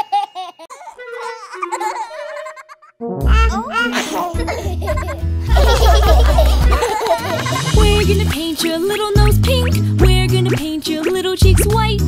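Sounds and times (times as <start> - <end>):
cartoon baby laughing: 0.0 - 8.4
held musical notes: 0.8 - 9.3.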